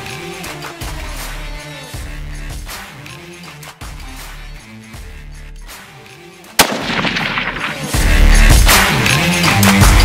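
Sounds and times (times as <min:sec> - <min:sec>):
rifle shot: 0:06.6 - 0:08.3.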